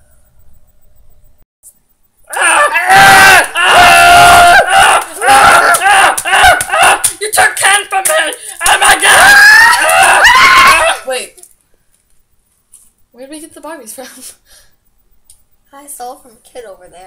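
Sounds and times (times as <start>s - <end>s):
girls screaming: 2.3s - 7.1s, 8.6s - 11.1s.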